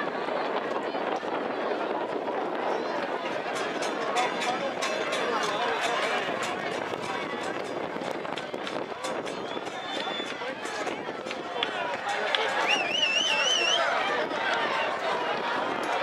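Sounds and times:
crowd talking and shouting: 0:00.0 - 0:16.0.

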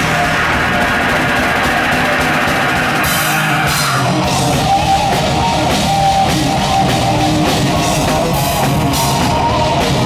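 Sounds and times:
heavy metal band playing live: 0:00.0 - 0:10.0.

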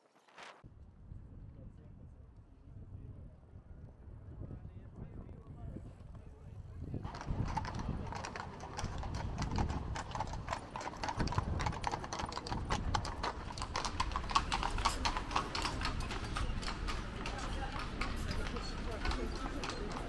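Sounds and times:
horse hooves clip-clopping on pavement: 0:07.1 - 0:20.0.

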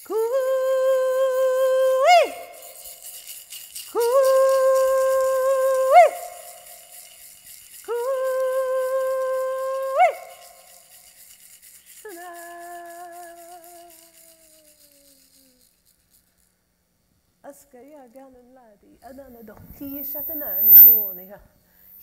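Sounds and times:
handheld rattle shaking: 0:02.3 - 0:09.6, 0:10.2 - 0:16.5, 0:20.0 - 0:21.1.

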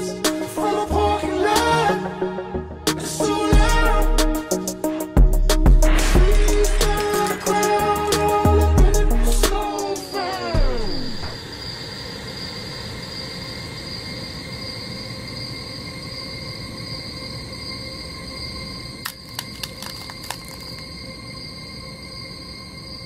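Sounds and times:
sharp clicks: 0:19.0 - 0:20.8.

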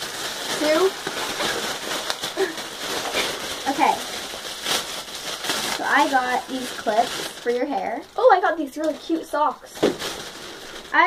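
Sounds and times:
plastic packaging tearing and crinkling: 0:00.0 - 0:11.0.

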